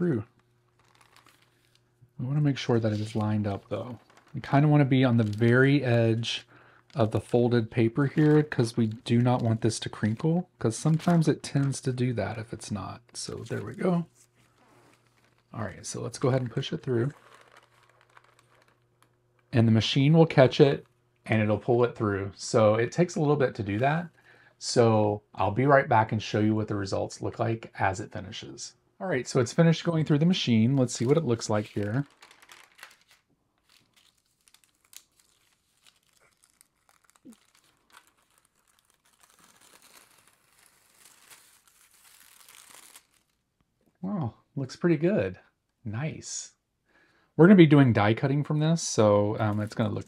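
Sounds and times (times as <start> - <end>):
paper rustling and ticking: 0.3 - 1.8, 2.6 - 19.6, 30.6 - 43.4
foil sheet crinkling: 0.4 - 1.9, 2.7 - 10.2, 13.2 - 15.6, 16.2 - 19.1, 30.8 - 43.4.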